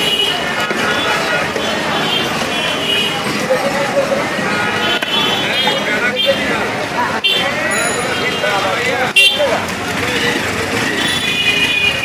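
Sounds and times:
people talking: 0.0 - 12.0
traffic noise: 0.0 - 12.0.

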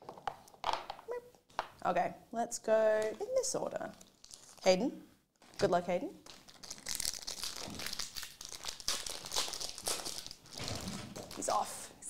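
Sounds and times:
foil wrappers crinkling: 3.9 - 4.7, 5.4 - 11.8.

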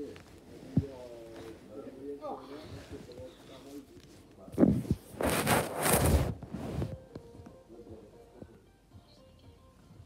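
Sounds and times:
rustling and scraping against mic: 2.7 - 7.4.

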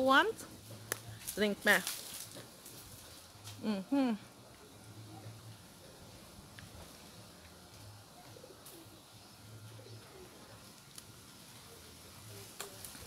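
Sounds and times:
dove cooing: 8.0 - 10.7.

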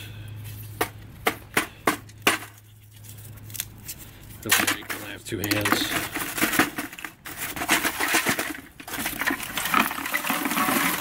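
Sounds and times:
charcoal lumps clinking on metal can: 4.4 - 11.0.

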